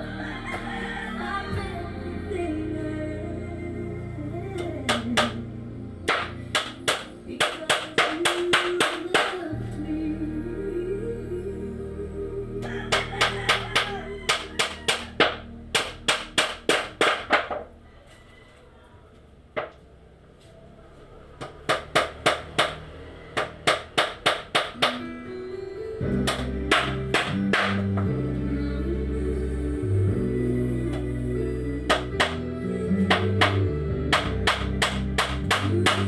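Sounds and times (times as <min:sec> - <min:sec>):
background music: 0:00.0 - 0:18.5, 0:19.3 - 0:36.0
hammer driving nails into wood: 0:06.1 - 0:09.4, 0:14.3 - 0:17.6, 0:26.2 - 0:28.0, 0:33.1 - 0:36.0.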